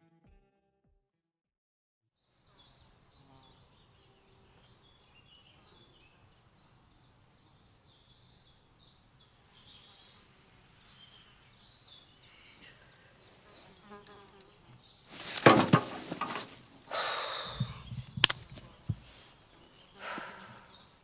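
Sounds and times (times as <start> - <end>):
birds chirping: 2.4 - 21.0.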